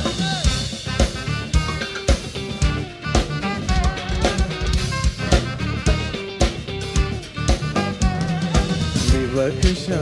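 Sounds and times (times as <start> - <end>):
bass drum and snare groove: 0.0 - 10.0
live band playing: 0.0 - 10.0.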